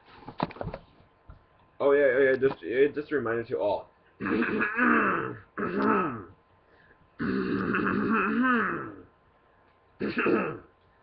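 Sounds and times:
person making wordless vocal sounds: 4.2s - 6.4s, 7.2s - 9.1s.

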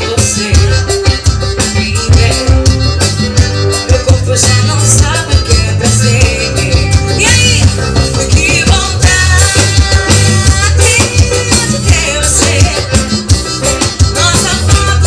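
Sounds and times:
woman singing into microphone: 0.0s - 2.8s, 3.9s - 13.2s, 14.1s - 15.0s
accordion: 0.0s - 15.0s
drum kit dance beat: 0.0s - 15.0s
electric bass: 0.0s - 15.0s.

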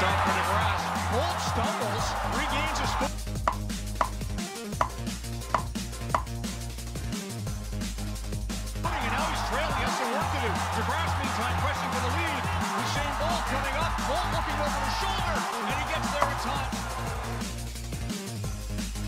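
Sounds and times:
stadium crowd cheering: 0.0s - 3.2s, 8.8s - 17.7s
electronic dance music: 0.0s - 4.7s, 7.4s - 19.0s.

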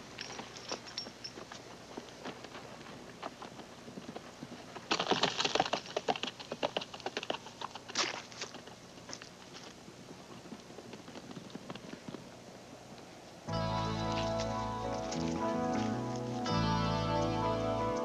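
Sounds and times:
hooves galloping on turf: 0.0s - 12.9s, 13.6s - 18.0s.

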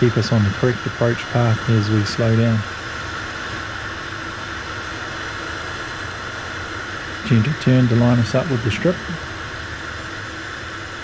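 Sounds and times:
faint low drone: 0.0s - 11.0s
turboprop cockpit hiss: 0.0s - 11.0s.

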